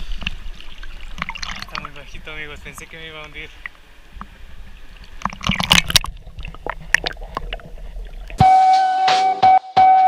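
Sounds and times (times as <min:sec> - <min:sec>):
pool water splashing: 0:00.0 - 0:08.4
loud music: 0:08.4 - 0:10.0.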